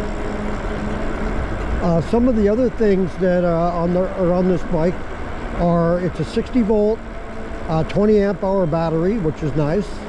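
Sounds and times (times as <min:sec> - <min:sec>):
faint steady hum: 0:00.0 - 0:10.0
road noise: 0:00.0 - 0:10.0.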